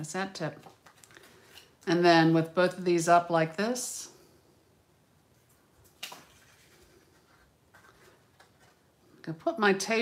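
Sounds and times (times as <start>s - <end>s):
paper and twine rustling: 5.4s - 9.0s.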